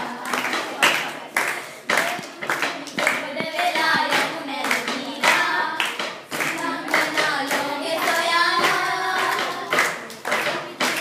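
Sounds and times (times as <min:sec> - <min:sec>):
girls singing together: 0:00.0 - 0:11.0
hands clapping in rhythm: 0:00.0 - 0:11.0.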